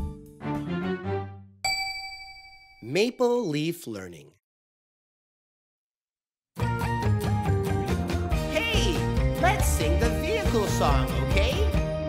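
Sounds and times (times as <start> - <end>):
bright bell-like ding: 1.7 - 2.9
children's background music: 6.6 - 12.0.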